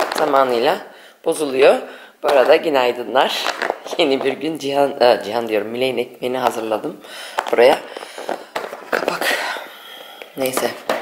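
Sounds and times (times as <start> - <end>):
plastic lid clicking: 7.3 - 9.2.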